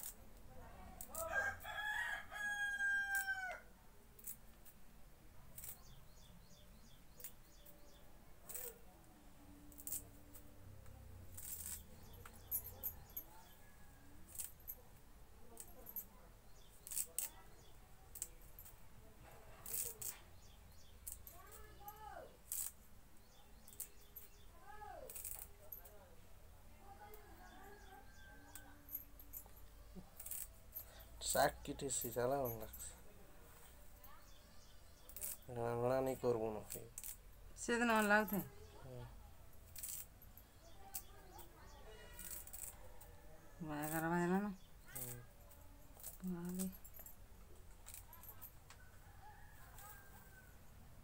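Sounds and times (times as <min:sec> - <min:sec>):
rooster crowing: 0:01.2 - 0:03.7.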